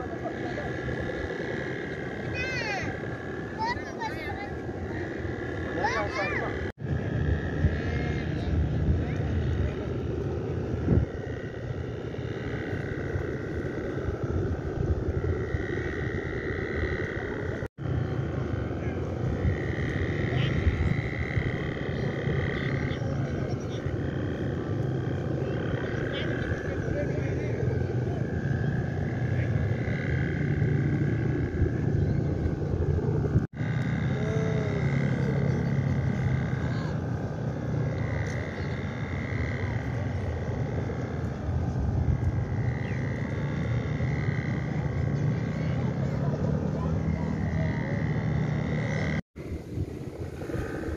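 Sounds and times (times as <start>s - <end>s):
kite hummers droning: 0.0s - 50.9s
wind rumble on microphone: 0.0s - 50.9s.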